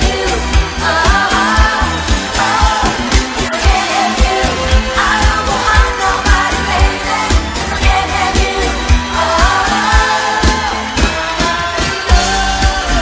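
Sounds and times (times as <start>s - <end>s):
bass drum beat: 0.0s - 13.0s
woman singing pop song: 0.0s - 13.0s.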